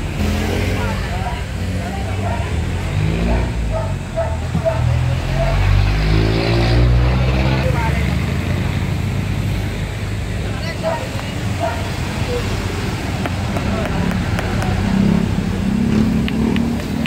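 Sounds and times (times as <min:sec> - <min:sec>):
people talking: 0:00.0 - 0:17.0
vehicle engine running: 0:00.0 - 0:17.0.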